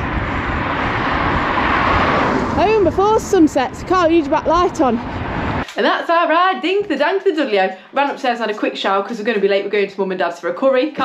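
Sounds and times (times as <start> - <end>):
bike riding on wet tarmac: 0.0 - 5.6
car passing on wet road: 0.0 - 5.6.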